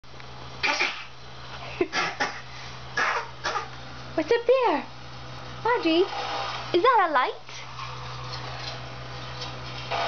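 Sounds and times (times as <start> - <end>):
person coughing: 1.8 - 3.7.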